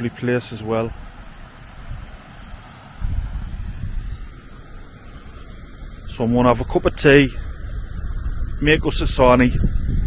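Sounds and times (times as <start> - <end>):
wind buffeting microphone: 0.8 - 10.0.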